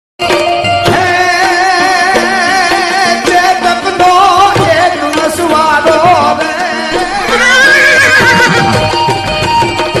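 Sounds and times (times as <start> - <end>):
loud folk music with drumming: 0.2 - 10.0
horse whinnying: 7.2 - 8.8.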